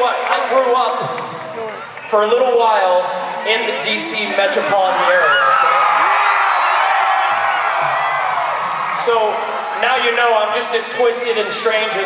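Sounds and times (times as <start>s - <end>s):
crowd cheering and whooping: 4.6s - 12.0s.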